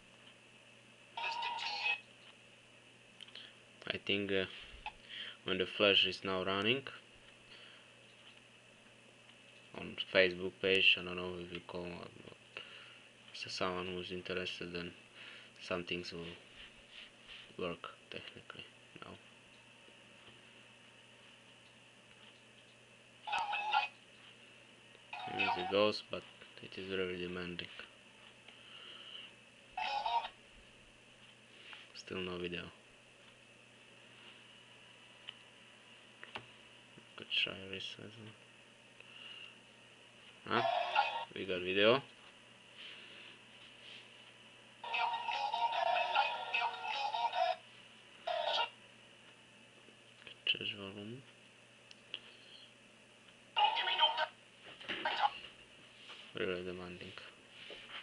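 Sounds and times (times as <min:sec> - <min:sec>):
faint steady hum and whine: 0:00.0 - 0:58.0.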